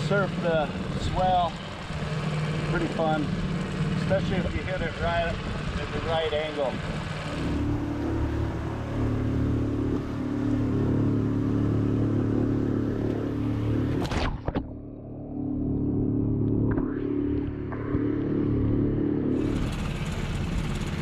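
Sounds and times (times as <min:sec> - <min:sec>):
outboard motor humming: 0:00.0 - 0:21.0.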